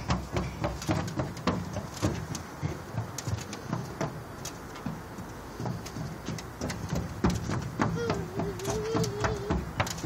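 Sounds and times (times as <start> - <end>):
footsteps on footbridge: 0.0 - 10.0.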